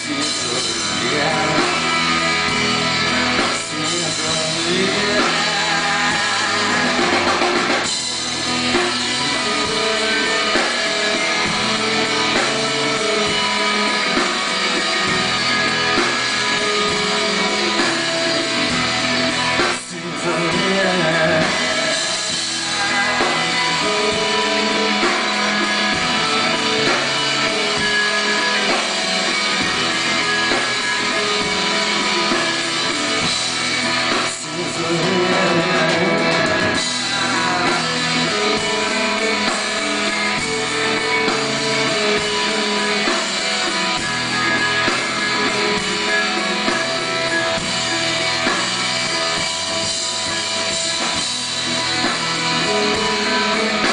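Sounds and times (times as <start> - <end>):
bass guitar: 0.0 - 53.9
drum kit with cymbals: 0.0 - 53.9
electric guitar: 0.0 - 53.9
live rock band playing: 0.0 - 53.9.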